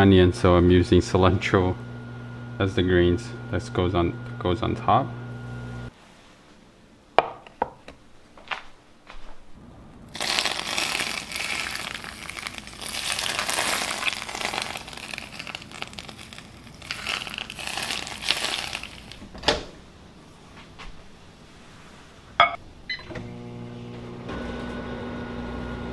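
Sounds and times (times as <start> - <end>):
hot oil sizzling and crackling: 10.1 - 19.2.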